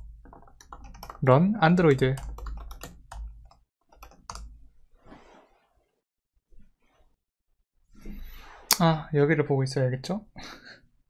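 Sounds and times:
computer keyboard typing: 0.0s - 4.5s.

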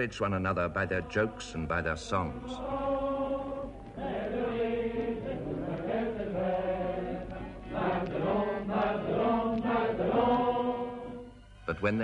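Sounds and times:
men's chorus singing: 0.5s - 11.3s.

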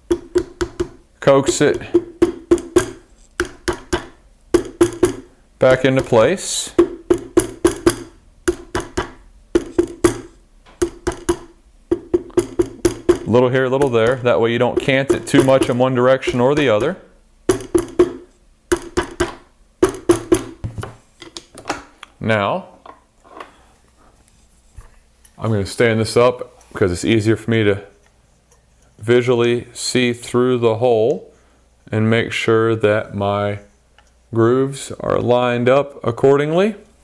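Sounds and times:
rubber mallet tapping steel: 0.0s - 20.6s.

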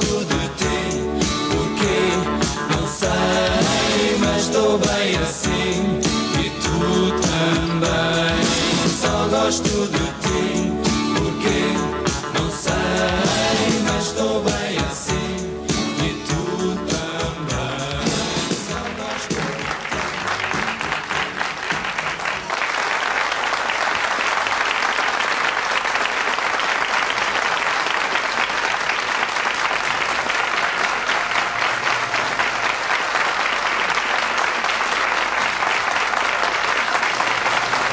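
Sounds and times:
song ending: 0.0s - 22.6s
audience applauding: 18.4s - 37.9s.

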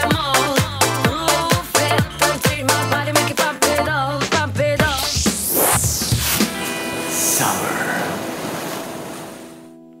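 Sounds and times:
logo whoosh: 4.9s - 8.6s.

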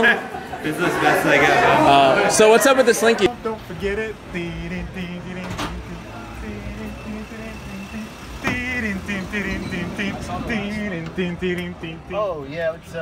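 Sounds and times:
van engine and road rumble: 3.2s - 13.0s.

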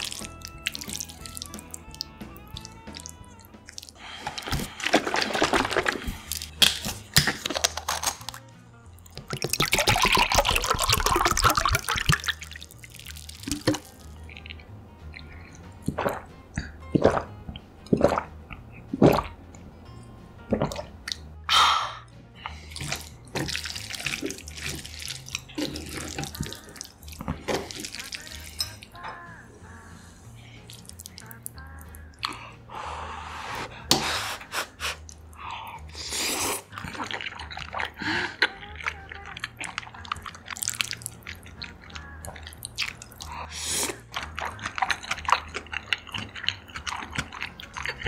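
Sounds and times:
wet chewing and slurping: 0.0s - 19.4s, 22.4s - 29.0s, 30.6s - 32.5s, 33.5s - 48.0s.

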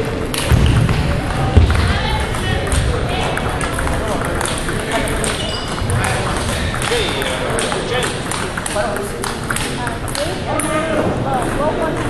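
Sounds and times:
indistinct voices: 0.0s - 12.0s
table tennis ball clicks: 2.7s - 10.8s.

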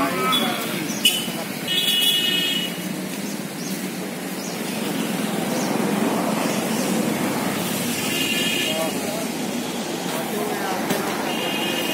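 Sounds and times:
people chattering: 0.0s - 3.2s, 4.0s - 11.9s
street traffic: 0.0s - 11.9s.

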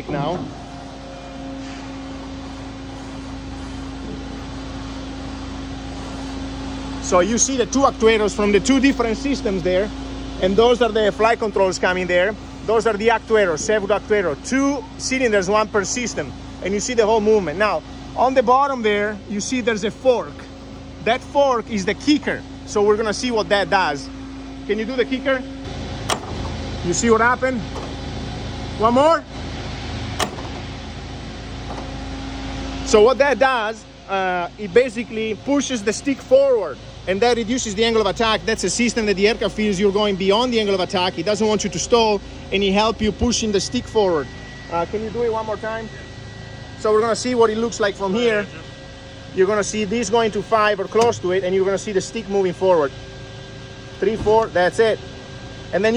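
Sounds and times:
steady mechanical hum: 0.0s - 55.9s.

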